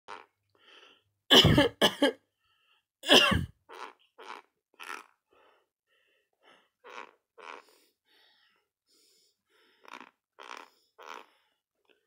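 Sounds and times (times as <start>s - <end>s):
person coughing: 1.3s - 2.2s, 3.0s - 3.5s.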